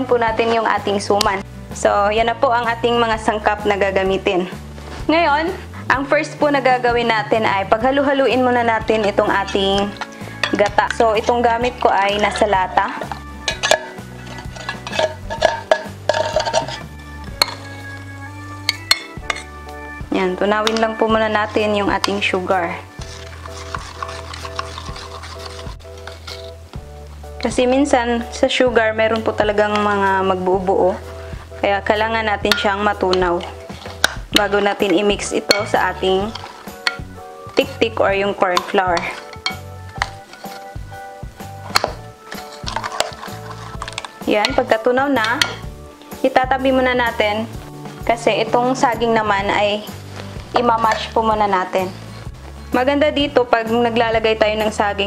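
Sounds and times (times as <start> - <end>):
background music: 0.0 - 55.0
metal spoon scraping in tin can: 8.8 - 18.0, 18.6 - 19.6, 20.6 - 26.6, 31.9 - 45.7, 49.5 - 52.7
spoon clinking on ceramic bowl: 13.4 - 16.8, 18.7 - 19.5, 35.4 - 37.1, 39.0 - 40.6.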